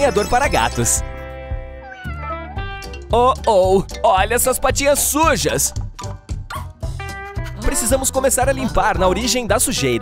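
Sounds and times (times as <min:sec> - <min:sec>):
background music: 0:00.0 - 0:10.0
cat meowing: 0:01.8 - 0:02.8.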